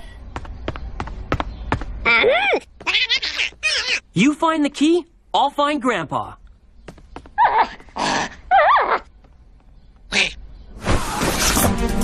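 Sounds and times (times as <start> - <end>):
cartoon creature squeaky chatter: 2.0 - 4.1.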